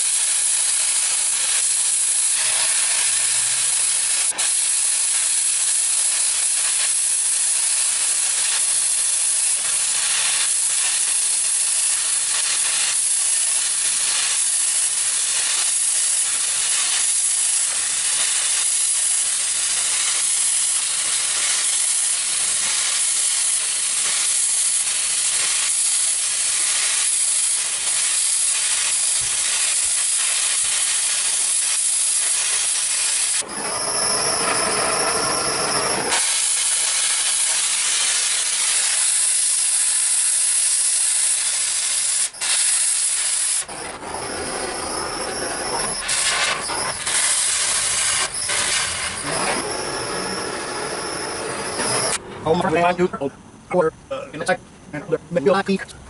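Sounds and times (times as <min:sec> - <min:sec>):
cutting torch hissing: 0:00.0 - 0:55.9.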